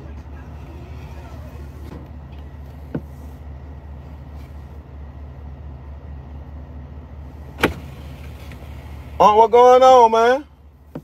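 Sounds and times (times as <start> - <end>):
engine humming inside cab: 0.0 - 11.0.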